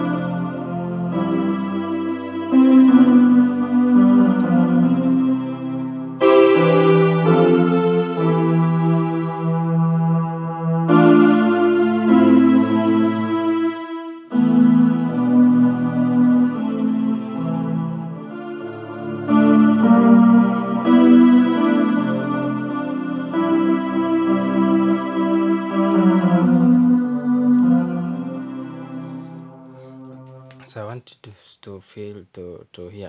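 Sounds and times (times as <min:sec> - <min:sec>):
keyboard strings chords: 0:00.0 - 0:30.9.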